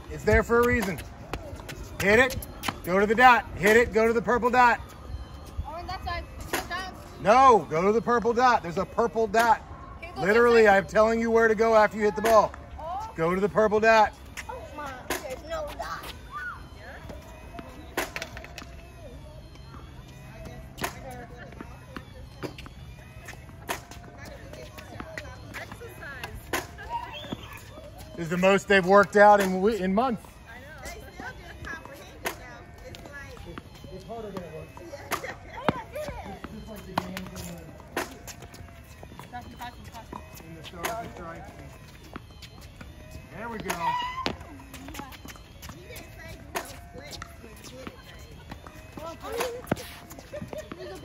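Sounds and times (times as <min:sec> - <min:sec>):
tennis rackets hitting balls: 0:00.6 - 0:02.9, 0:23.3 - 0:28.1, 0:33.0 - 0:51.0
children chattering: 0:44.2 - 0:51.0.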